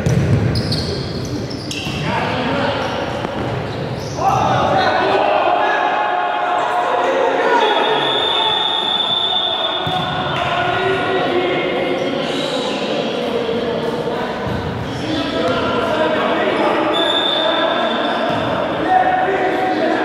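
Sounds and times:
players shouting in hall: 4.2s - 11.9s.

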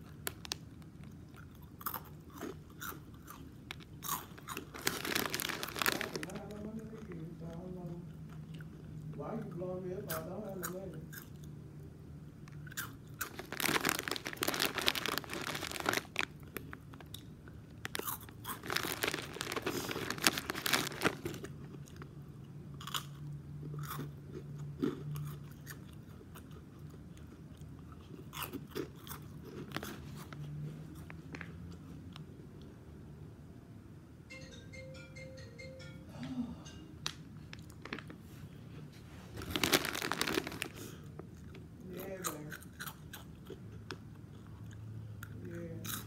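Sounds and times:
crunchy pickle chewing: 0.0s - 11.6s, 12.4s - 32.7s, 39.4s - 46.0s.

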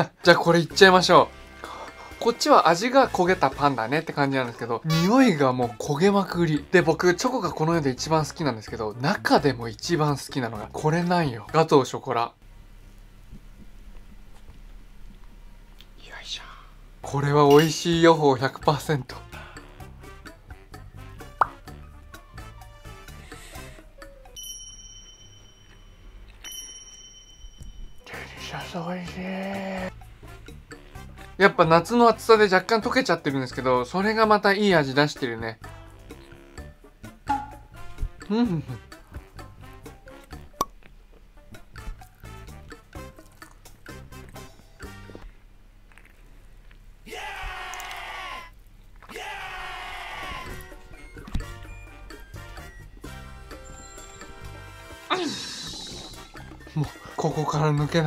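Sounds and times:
quiet background music: 0.0s - 46.0s, 50.0s - 58.0s
bright bell-like chimes: 24.4s - 28.4s, 52.6s - 54.7s.

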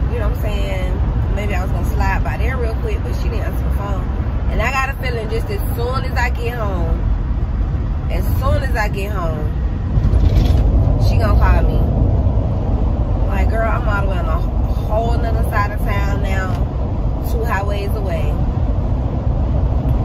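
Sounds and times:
car cabin road rumble: 0.0s - 20.0s.

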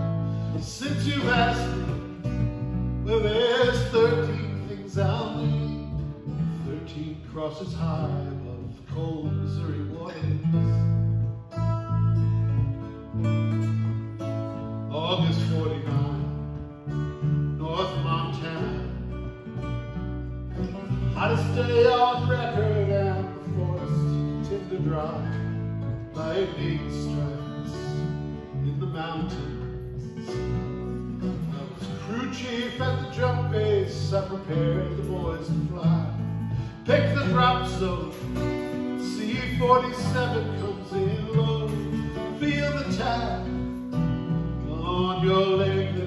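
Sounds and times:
man singing: 0.0s - 11.1s, 14.9s - 19.2s, 20.9s - 46.0s
acoustic guitars strumming: 0.0s - 46.0s
electric bass line: 0.0s - 46.0s.

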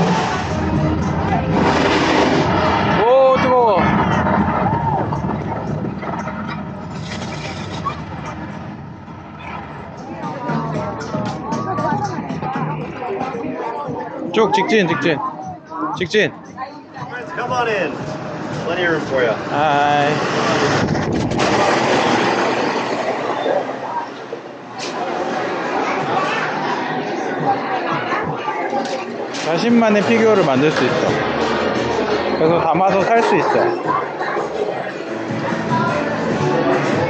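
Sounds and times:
gas flame jets firing: 0.0s - 9.9s, 18.0s - 25.6s
low rumble: 0.3s - 13.0s, 17.9s - 23.8s
wind rushing across microphone: 19.4s - 23.2s.

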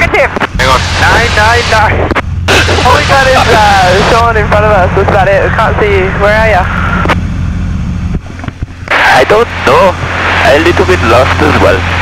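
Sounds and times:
radio and intercom speech: 0.0s - 6.8s, 8.9s - 11.9s
aircraft engine droning: 0.0s - 12.0s.

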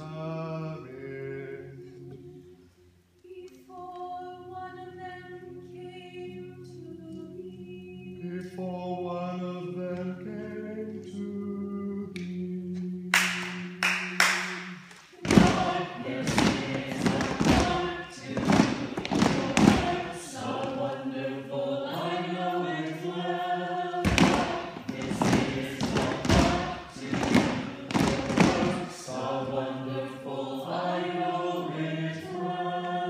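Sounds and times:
group singing unaccompanied: 0.0s - 2.6s, 3.2s - 33.0s
sharp thumps: 24.0s - 28.9s.

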